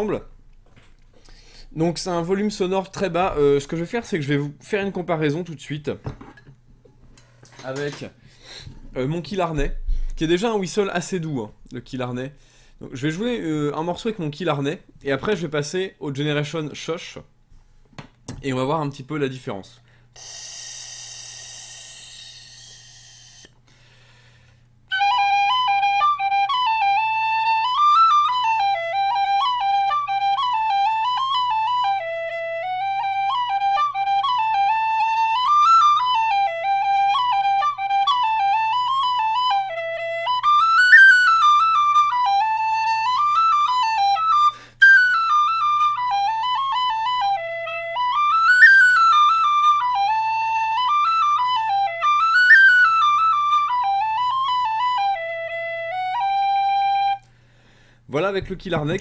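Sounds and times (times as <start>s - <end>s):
tin whistle playing lively tune: 20.2s - 23.5s, 24.9s - 57.3s.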